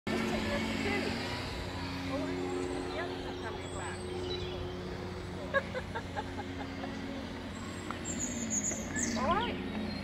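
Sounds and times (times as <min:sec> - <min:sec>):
electric motor whining: 0:00.1 - 0:10.0.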